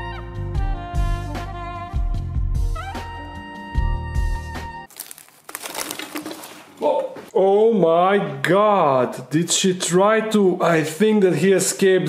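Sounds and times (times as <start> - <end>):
jazz music with brass: 0.5 - 4.4
faint crackling rustle: 4.9 - 7.0.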